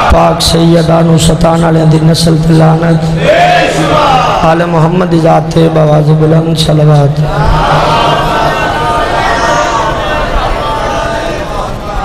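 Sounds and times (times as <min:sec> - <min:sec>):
congregation chanting in unison: 0:03.2 - 0:04.6, 0:07.2 - 0:12.0.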